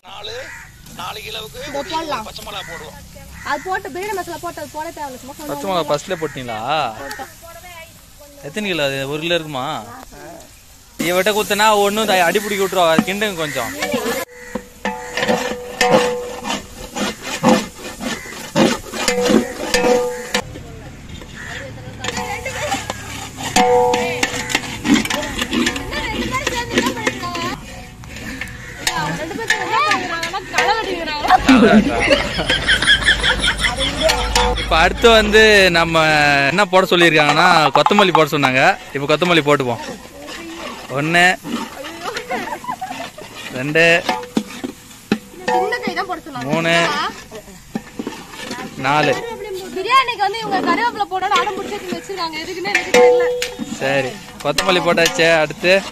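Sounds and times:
people talking: 0:00.0 - 0:14.3, 0:20.4 - 0:27.8, 0:28.8 - 0:44.1, 0:45.4 - 0:47.6, 0:48.4 - 0:55.9
metal ladle scraping a pot: 0:10.4 - 0:55.9
ladle clanking against metal: 0:12.0 - 0:55.9.

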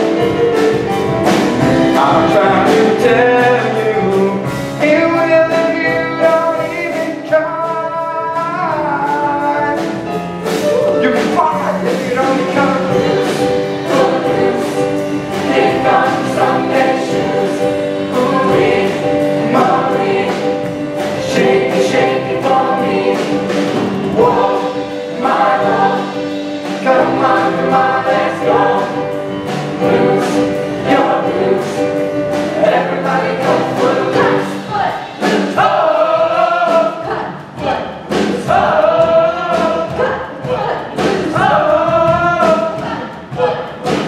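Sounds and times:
choir singing: 0:00.0 - 0:07.1, 0:10.4 - 0:44.0
accompaniment with steady beat: 0:00.0 - 0:44.0.

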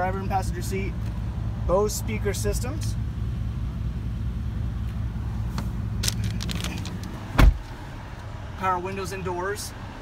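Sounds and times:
car door thump: 0:07.3 - 0:07.7.

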